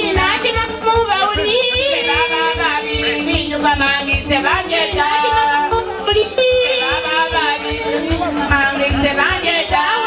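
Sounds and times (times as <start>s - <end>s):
women's choir singing: 1.2s - 8.0s, 8.6s - 10.0s.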